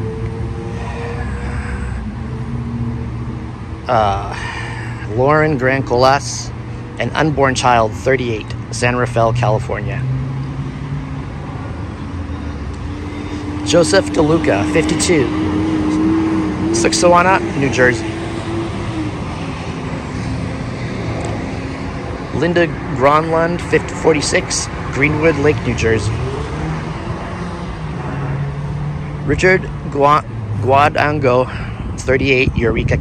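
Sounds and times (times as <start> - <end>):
passing cars rumble: 0.0 - 33.0
road traffic: 0.0 - 33.0.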